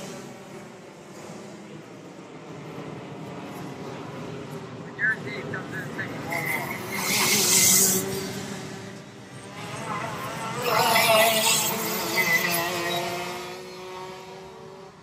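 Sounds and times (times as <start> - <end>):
racing kart engines passing: 0.0 - 15.0.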